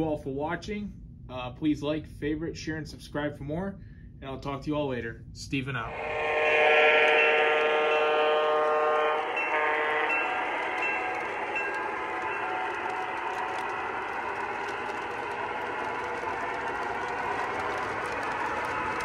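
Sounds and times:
model train horn blasts: 5.9s - 19.0s
train cars rumbling on track: 5.9s - 19.0s.

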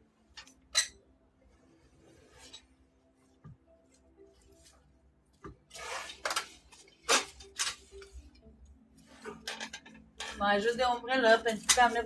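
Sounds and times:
rustling and scraping: 1.4s - 12.0s.

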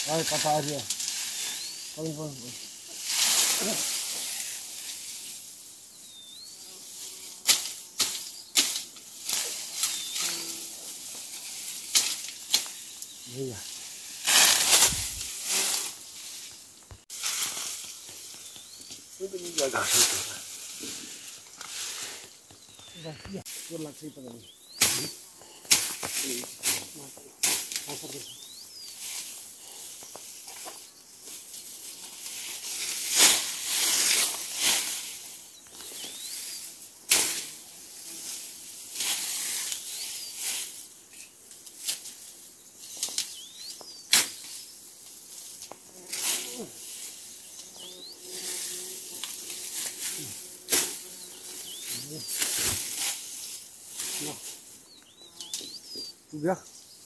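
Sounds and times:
bamboo leaves rustling: 0.0s - 5.8s, 6.7s - 57.0s
faint high chirps: 5.8s - 6.8s.

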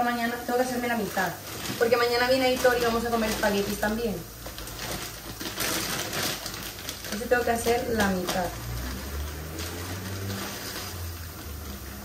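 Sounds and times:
dry pasta pouring into metal pot: 0.9s - 12.0s.

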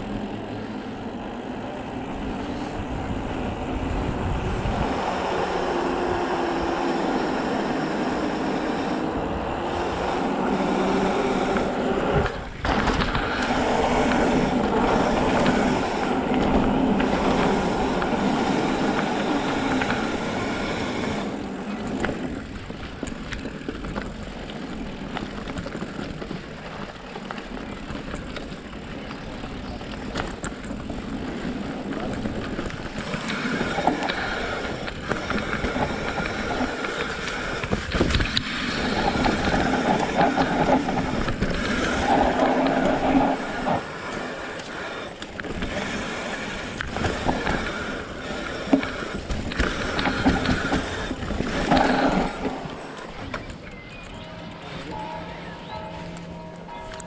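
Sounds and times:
faint steady whine: 0.0s - 57.0s
wind on camera: 2.1s - 54.2s
tyre rolling noise: 9.4s - 53.8s.

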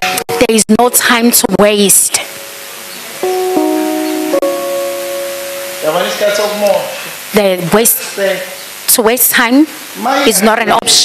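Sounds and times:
keyboard playing held chords: 2.3s - 7.3s.

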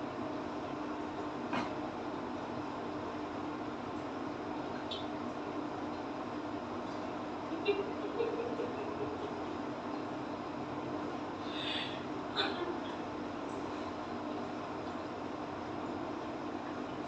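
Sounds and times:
steady fan hum with hiss: 0.0s - 17.0s.

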